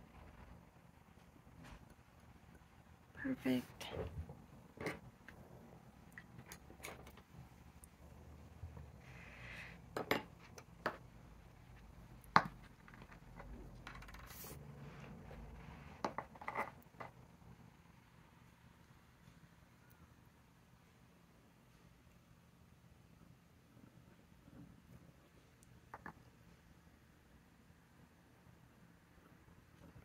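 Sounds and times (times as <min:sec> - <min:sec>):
small objects knocking on tabletop: 0:12.3 - 0:13.2.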